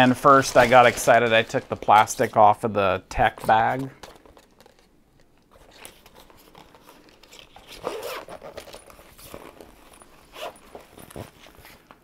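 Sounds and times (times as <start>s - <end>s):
fabric rustling: 0.0s - 2.5s, 5.6s - 12.0s
zipper being pulled: 5.6s - 11.9s.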